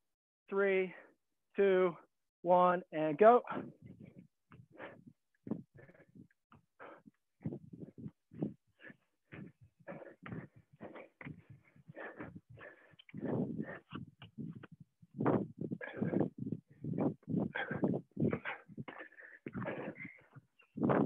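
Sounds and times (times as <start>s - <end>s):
people breathing heavily: 3.5s - 21.0s
short puffs and grunts: 3.5s - 21.0s.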